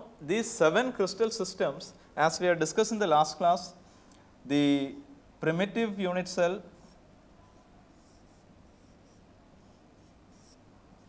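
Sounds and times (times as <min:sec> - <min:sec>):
marker pen strokes on board: 0:06.8 - 0:10.6.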